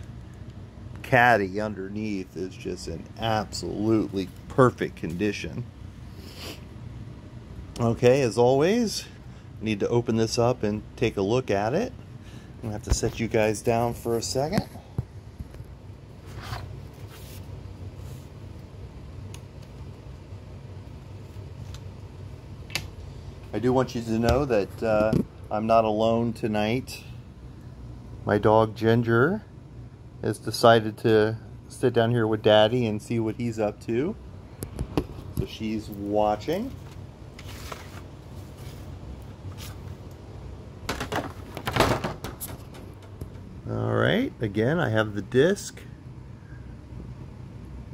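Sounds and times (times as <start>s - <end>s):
steady low hum: 0.0s - 47.9s
plastic caddy scraping swishes: 37.4s - 39.9s
plastic caddy rustling and clattering: 40.9s - 43.1s.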